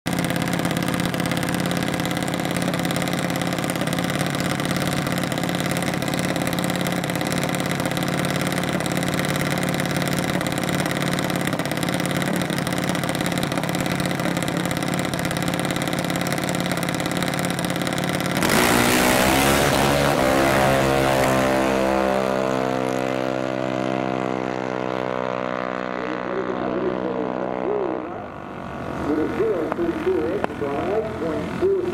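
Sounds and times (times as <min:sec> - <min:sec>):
dragster engine idling and revving: 0:00.1 - 0:31.9.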